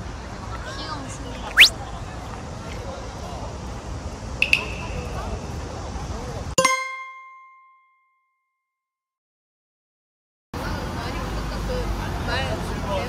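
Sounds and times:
outdoor street background: 0.0s - 6.6s, 10.6s - 13.0s.

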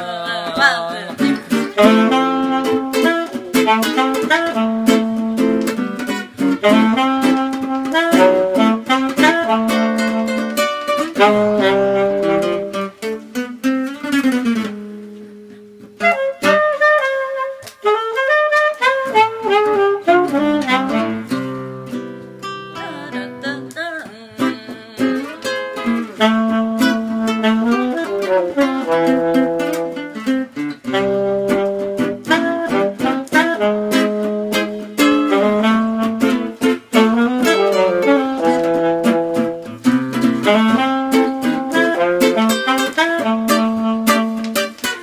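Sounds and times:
acoustic guitar picking: 0.0s - 45.0s
saxophone melody: 0.0s - 45.0s.

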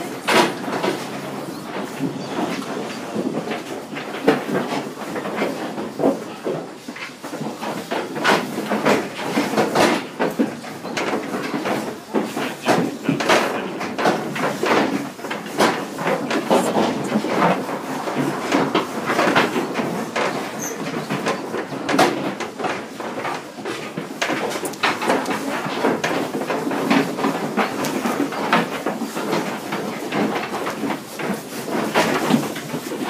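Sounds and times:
clattering in metal trailer: 0.0s - 33.0s
pigs grunting: 12.4s - 28.6s.

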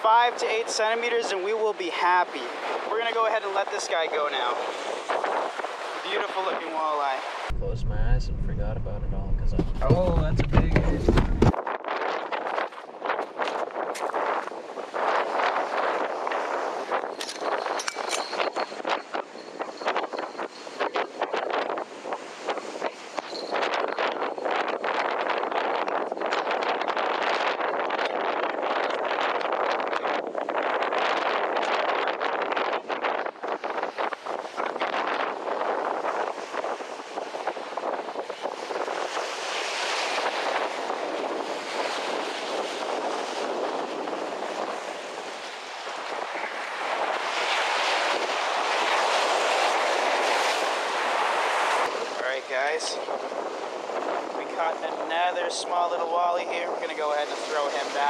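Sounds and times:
waves breaking on rocks: 0.0s - 7.5s, 11.5s - 58.0s
wind buffeting microphone: 0.0s - 58.0s.

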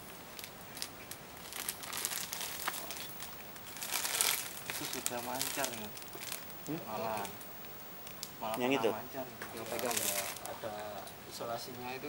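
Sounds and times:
crinkling and rustling of wiring: 0.0s - 11.9s.

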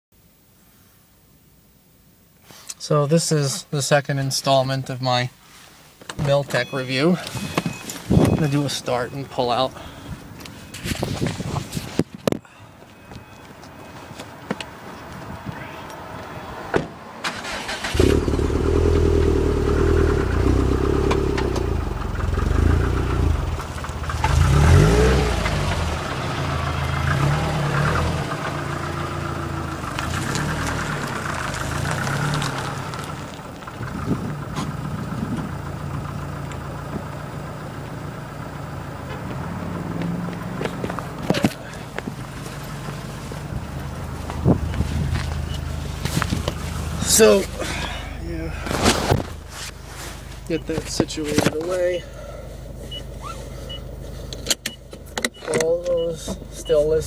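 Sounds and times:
car engine starting and idling: 16.2s - 57.0s.

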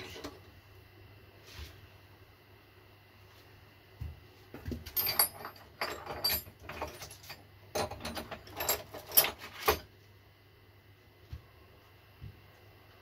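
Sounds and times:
metal tools clinking: 4.9s - 9.8s.

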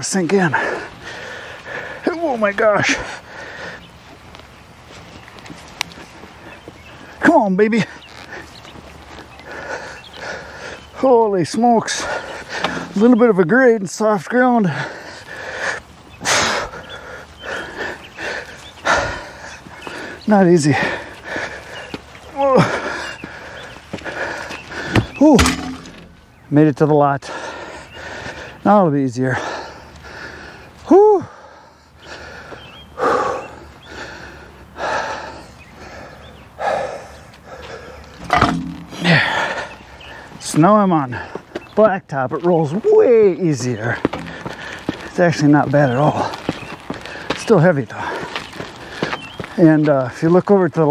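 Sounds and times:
man panting heavily: 0.0s - 4.1s, 9.3s - 13.2s, 14.0s - 25.3s, 27.2s - 38.2s, 38.8s - 40.4s, 41.0s - 41.6s, 43.4s - 49.4s
man breathing hard: 0.4s - 2.1s, 2.9s - 4.1s, 9.4s - 11.0s, 11.9s - 13.0s, 14.6s - 26.2s, 27.2s - 28.6s, 29.3s - 40.4s, 44.0s - 45.1s, 46.2s - 49.4s.

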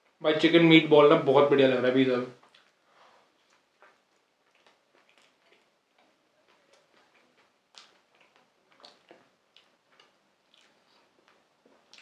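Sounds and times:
mouth clicks and smacks: 2.4s - 2.8s, 3.4s - 12.0s
chewing food close up: 2.4s - 12.0s.

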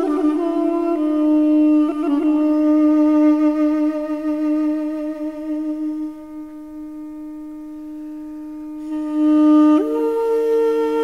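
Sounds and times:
duduk holding a low note: 0.0s - 11.0s.

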